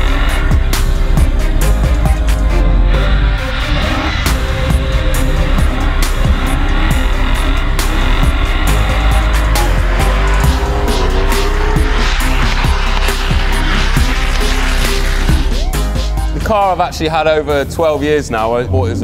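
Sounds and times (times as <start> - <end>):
car engines at high revs: 0.0 - 16.3
loud background music: 0.0 - 19.0.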